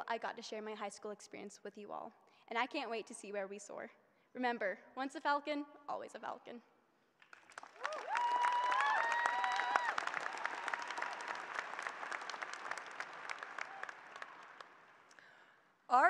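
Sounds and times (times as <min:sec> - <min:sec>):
audience applauding: 0:07.2 - 0:15.2
cheers and whoops: 0:07.8 - 0:12.6, 0:13.3 - 0:14.5.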